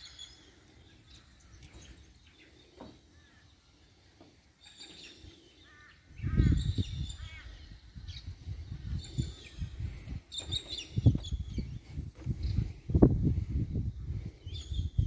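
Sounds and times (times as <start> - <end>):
birds chirping: 0.0 - 15.0
low rumble on microphone: 6.2 - 15.0.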